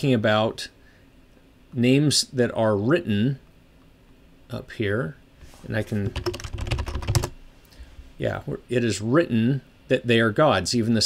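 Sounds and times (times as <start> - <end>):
keyboard typing: 5.8 - 7.4.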